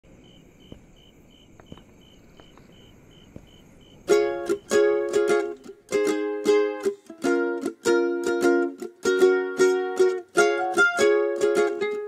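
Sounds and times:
faint insect chirping: 0.0 - 6.0
soft knocks: 0.6 - 3.7.

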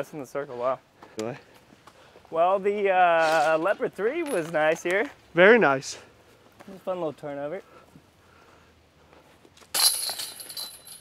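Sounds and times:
disc striking basket chains: 4.1 - 4.8, 9.7 - 11.0.

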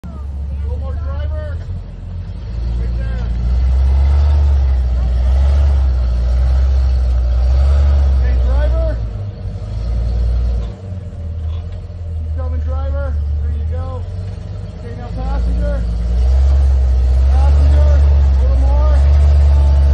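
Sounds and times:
engine rumbling under load: 0.0 - 19.9
voices: 0.0 - 19.9.

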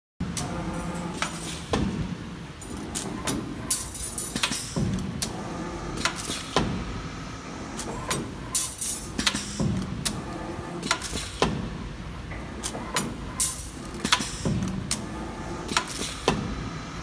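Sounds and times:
machine mechanical clacks: 0.2 - 6.9, 7.6 - 16.7.

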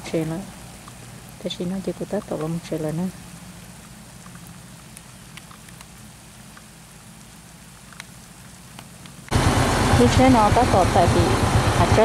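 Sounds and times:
faint crackles: 0.0 - 9.3
distant diesel truck engine hum: 0.0 - 12.0.

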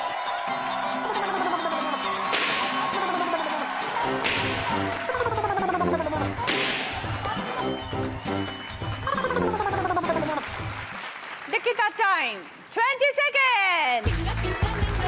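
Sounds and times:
background music with steady beat: 0.0 - 10.9, 14.0 - 15.0.

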